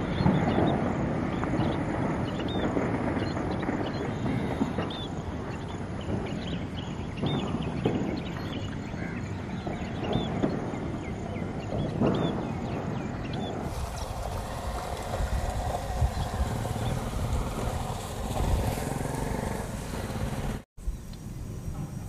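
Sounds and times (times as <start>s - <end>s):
small birds chirping: 0.0s - 21.2s
broad rushing noise: 13.6s - 20.7s
low rumble: 13.7s - 20.6s.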